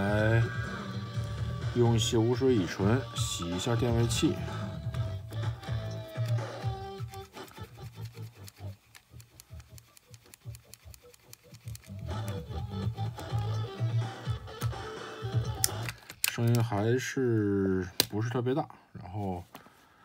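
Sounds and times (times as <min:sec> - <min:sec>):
music from cassette player: 0:00.0 - 0:16.7
handling clicks: 0:06.1 - 0:12.5, 0:15.5 - 0:16.7.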